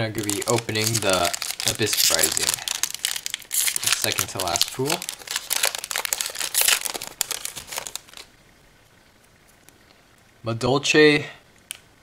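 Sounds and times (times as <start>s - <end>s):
foil wrapper crinkling: 0.0s - 8.3s.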